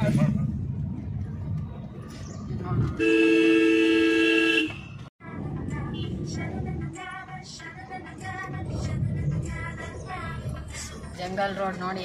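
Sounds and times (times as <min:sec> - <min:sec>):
car running rumble: 0:00.0 - 0:03.1
two-tone car horn: 0:03.0 - 0:05.0.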